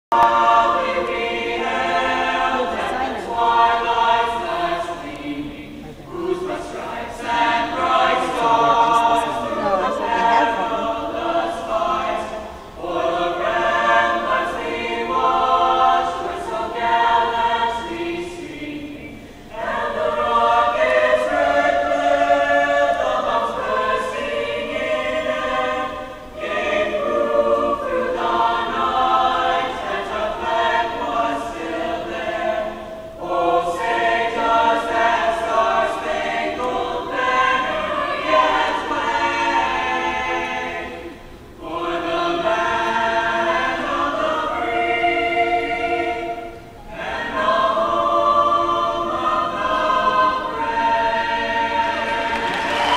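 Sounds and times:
choir singing: 0.1s - 52.9s.

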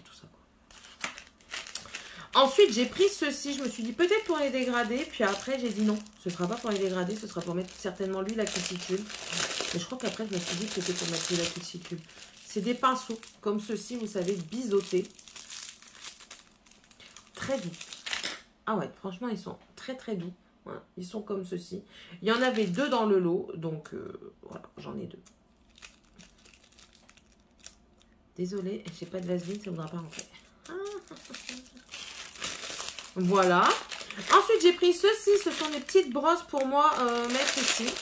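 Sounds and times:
small items crinkling and rustling: 0.7s - 18.4s, 22.3s - 23.1s, 25.6s - 38.0s.

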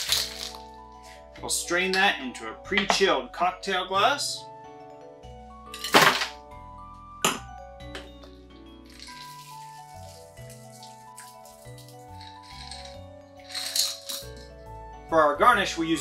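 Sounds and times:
ice rattling in shaker: 0.0s - 0.7s, 8.8s - 14.6s
background music: 0.0s - 16.0s
liquid trickling into glass: 8.9s - 14.3s.

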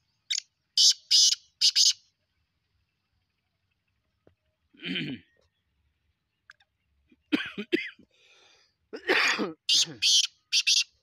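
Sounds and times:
bird calling harshly: 0.3s - 2.1s, 9.6s - 11.0s.

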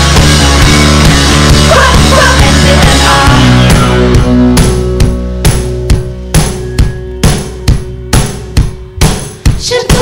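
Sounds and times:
drum hits on a steady beat: 0.0s - 10.0s.

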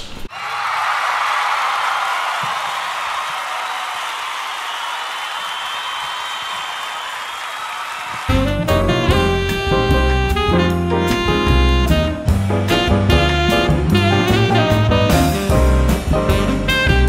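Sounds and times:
applause: 0.3s - 8.7s.

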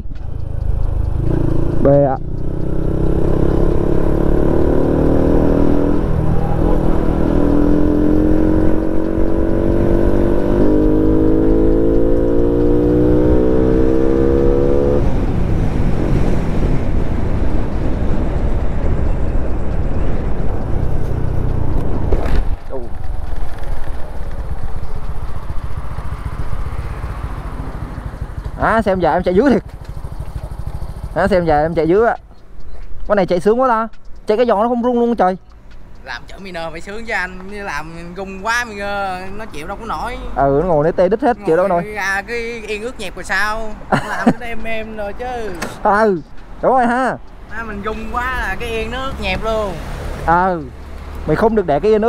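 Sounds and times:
motorcycle engine revving: 0.0s - 41.8s, 44.4s - 52.0s
wind on microphone: 12.2s - 28.4s.

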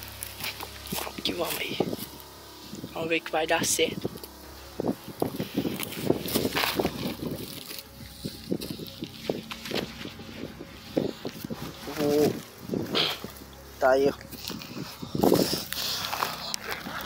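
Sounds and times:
footsteps on dry grass: 0.0s - 17.0s
person speaking: 0.7s - 4.8s, 11.6s - 15.0s
nylon case rustling: 3.8s - 17.0s.

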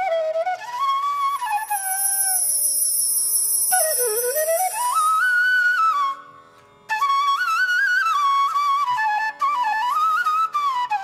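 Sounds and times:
bamboo flute: 0.0s - 11.0s
high shimmer and soft drone: 1.4s - 5.5s.

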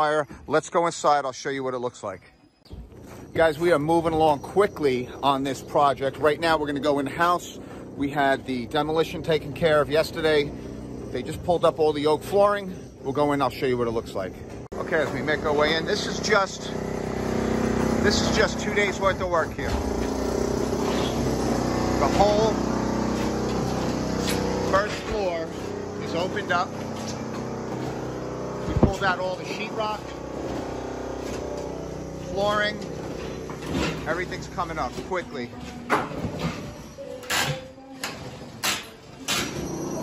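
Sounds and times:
low machine hum: 2.8s - 37.0s.

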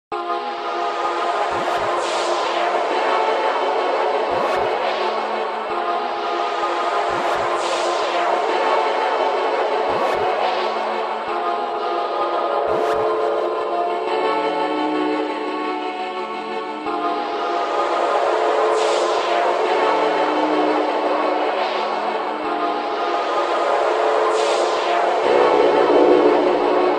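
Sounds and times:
noisy electronic synth music: 0.2s - 26.9s
synth downward sweep: 16.9s - 26.9s
distorted synth texture: 25.2s - 26.9s.

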